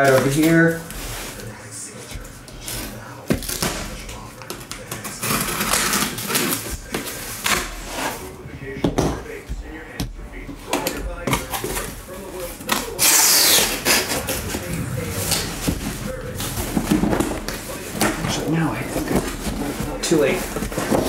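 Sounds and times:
cardboard rustling and scraping: 0:16.8 - 0:21.0.

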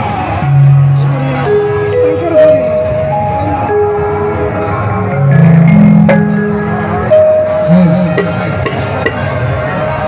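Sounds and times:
harmonium chords over loudspeakers: 0:00.4 - 0:10.0.

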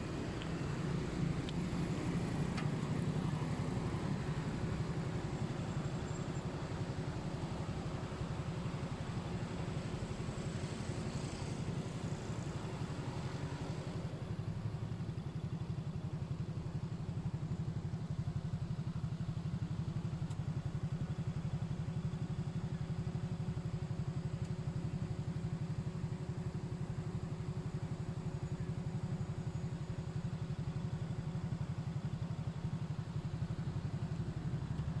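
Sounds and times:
motorcycle engine idling: 0:00.0 - 0:35.0.

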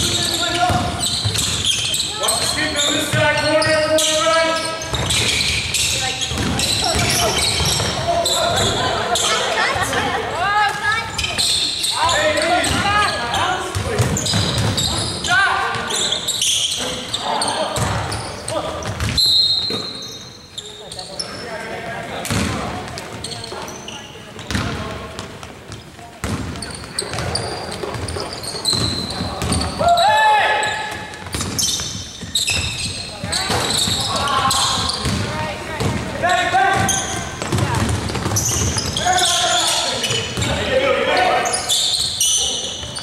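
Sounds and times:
players' voices calling out: 0:00.0 - 0:25.1, 0:26.5 - 0:43.0
basketball bouncing on hardwood: 0:06.3 - 0:08.0, 0:13.7 - 0:14.8, 0:24.4 - 0:29.7, 0:34.8 - 0:36.1, 0:36.8 - 0:39.0.

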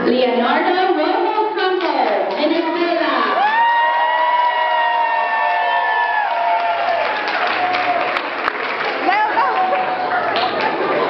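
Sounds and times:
crowd noise in a large hall: 0:00.0 - 0:11.0.

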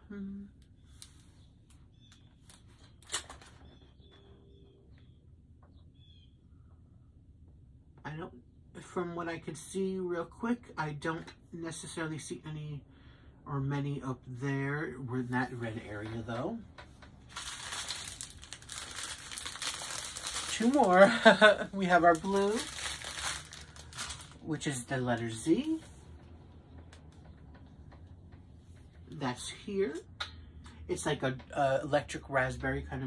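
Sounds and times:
plastic bags crinkling: 0:17.2 - 0:25.8.

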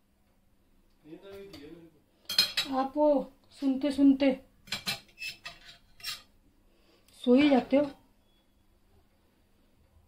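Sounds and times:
knife clinking on ceramic plate: 0:02.3 - 0:02.8, 0:04.7 - 0:06.3.

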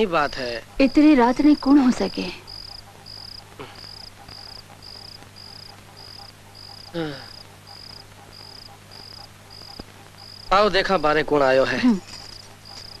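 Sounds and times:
cricket chirping: 0:00.0 - 0:13.0
low steady hum: 0:00.0 - 0:13.0
person grunting: 0:06.9 - 0:07.3.

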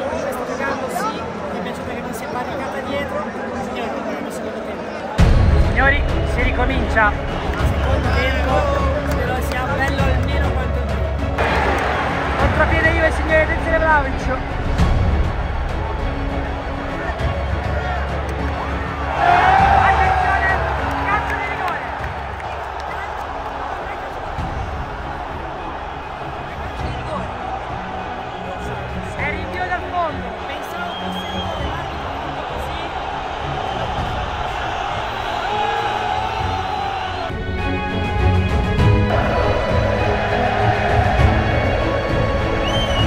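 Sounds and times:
crowd cheering and chanting: 0:00.0 - 0:43.0
stadium crowd roaring: 0:00.0 - 0:43.0
yells and whistles: 0:30.6 - 0:32.0, 0:42.6 - 0:43.0.

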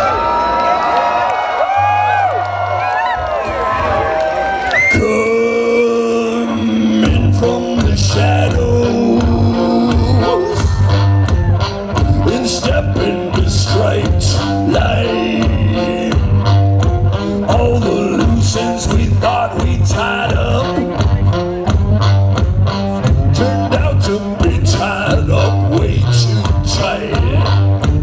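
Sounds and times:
pipe instrument bass line: 0:04.9 - 0:28.0.

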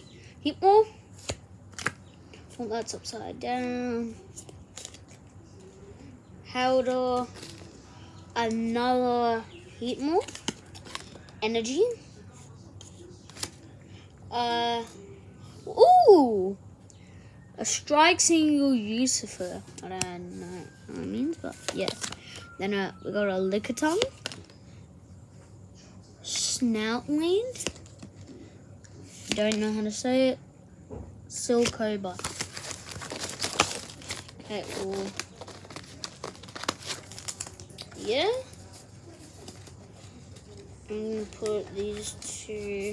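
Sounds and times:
trading cards handled: 0:01.1 - 0:02.9, 0:12.8 - 0:13.6, 0:21.4 - 0:22.5, 0:31.5 - 0:42.9.

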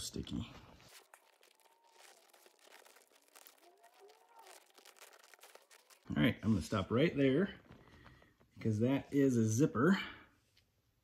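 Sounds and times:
sticky tape unrolling crackle: 0:00.6 - 0:06.1.

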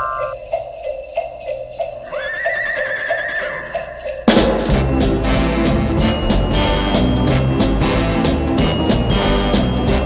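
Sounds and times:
sleigh bells jingling: 0:00.0 - 0:10.0
horse whinny: 0:02.1 - 0:04.0.

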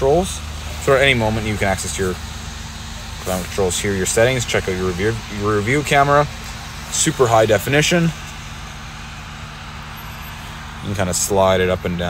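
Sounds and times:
climate blower air rush: 0:00.0 - 0:12.0
engine idling hum: 0:00.0 - 0:12.0.

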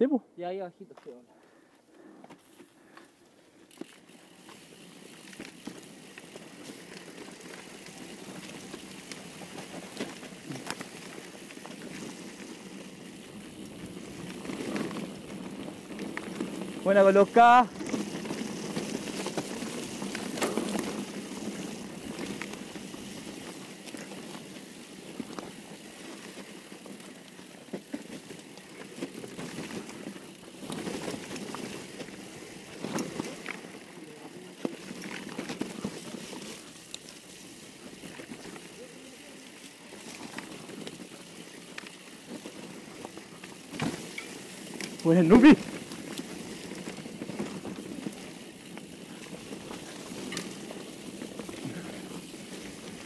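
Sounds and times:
bike tyres on dirt: 0:00.9 - 0:53.0
bike rattling and clicking: 0:02.2 - 0:53.0.

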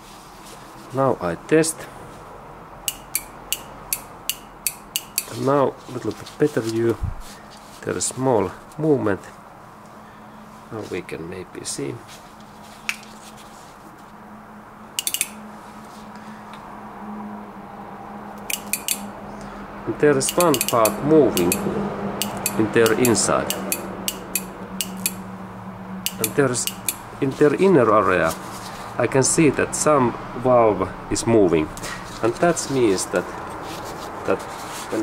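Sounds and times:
solenoid clicking: 0:02.9 - 0:05.3, 0:15.0 - 0:15.4, 0:18.4 - 0:19.0, 0:20.2 - 0:21.6, 0:22.2 - 0:25.2, 0:26.1 - 0:27.0.

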